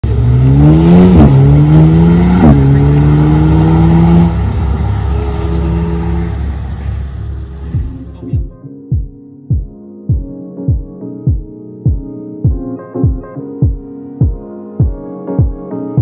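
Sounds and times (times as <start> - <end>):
car engine accelerating hard: 0.0 - 8.4.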